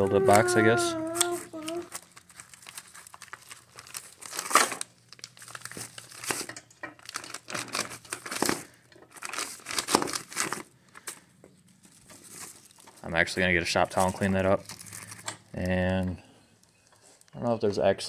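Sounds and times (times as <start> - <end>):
plastic wrapping crinkling: 0.0 - 17.6.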